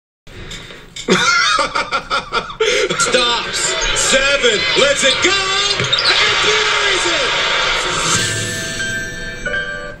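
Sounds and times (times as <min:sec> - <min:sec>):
voice on television: 0:02.6 - 0:08.7
sustained music sting: 0:07.7 - 0:09.8.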